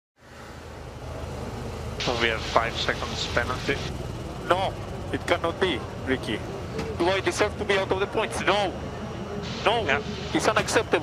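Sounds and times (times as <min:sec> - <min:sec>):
race car engine idling: 0:00.3 - 0:10.6.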